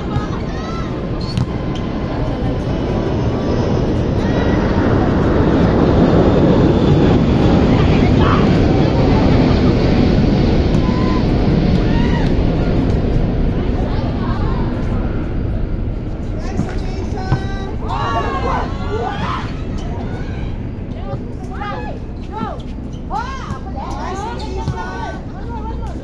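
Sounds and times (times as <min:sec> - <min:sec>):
loud low rumbling: 0:00.0 - 0:26.0
players shouting calls: 0:16.5 - 0:26.0.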